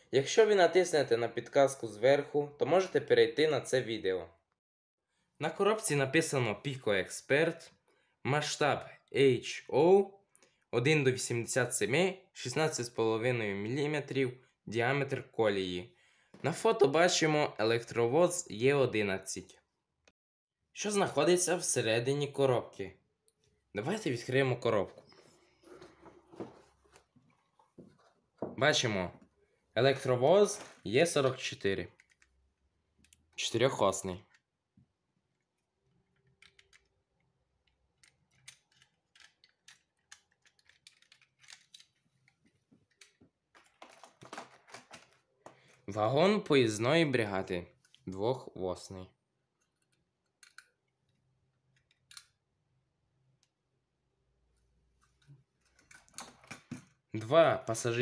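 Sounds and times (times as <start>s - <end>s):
plastic model wagons clicking: 36.1s - 45.2s.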